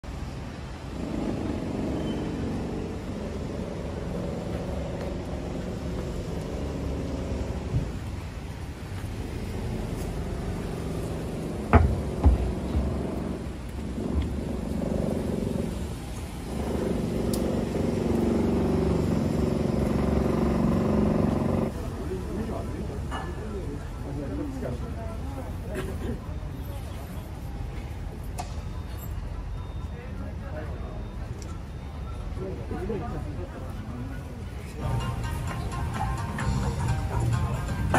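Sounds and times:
vehicle engine running: 0:00.0 - 0:22.4
street noise: 0:00.0 - 0:37.9
sharp knocks: 0:11.7 - 0:13.2.

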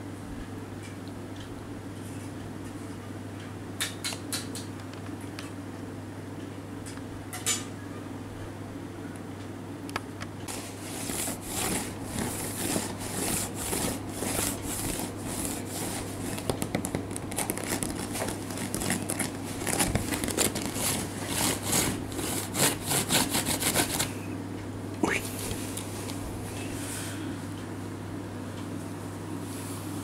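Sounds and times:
fingernails scratching on bamboo mat: 0:10.5 - 0:24.1.

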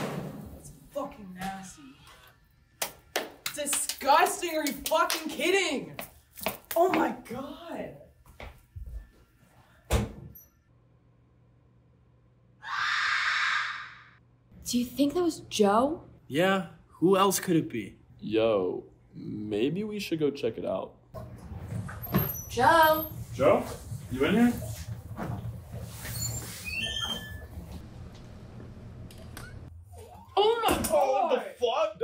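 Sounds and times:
person screaming hoarsely: 0:12.6 - 0:14.2.

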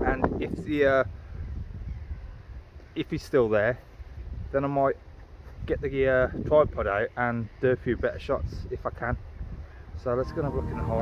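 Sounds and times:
wind on microphone: 0:00.0 - 0:02.7, 0:04.0 - 0:04.6, 0:07.9 - 0:11.0.

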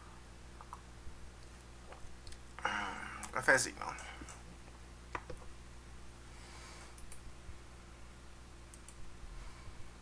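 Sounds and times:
low electrical hum: 0:00.0 - 0:10.0
computer mouse clicks: 0:06.9 - 0:07.2, 0:08.7 - 0:09.0.

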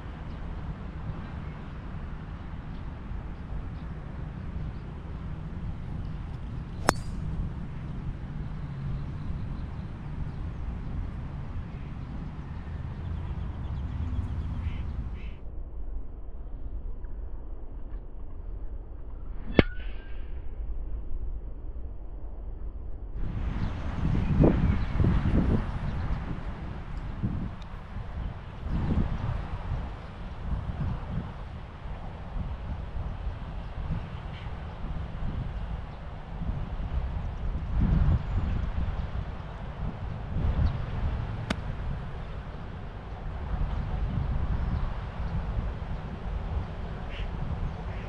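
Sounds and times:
golf club striking ball: 0:06.8 - 0:07.4, 0:41.3 - 0:42.0
wind buffeting microphone: 0:23.2 - 0:48.0.

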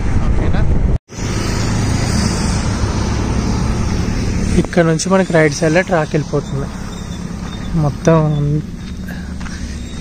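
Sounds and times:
vehicle noise: 0:00.0 - 0:10.0
wind rushing on microphone: 0:00.0 - 0:10.0.

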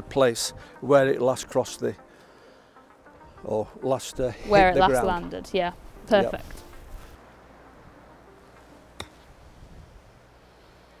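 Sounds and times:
golf club striking ball: 0:08.6 - 0:09.4.

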